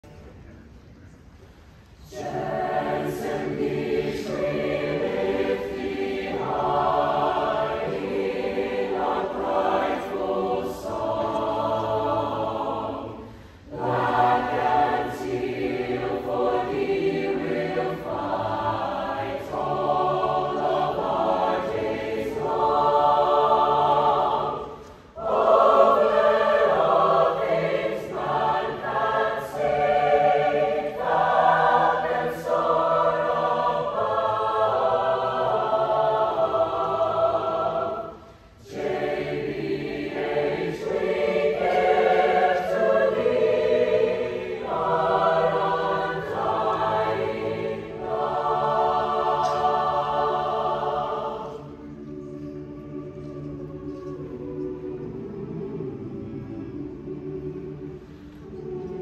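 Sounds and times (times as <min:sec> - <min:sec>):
mixed-voice choir singing: 0:01.5 - 0:59.0.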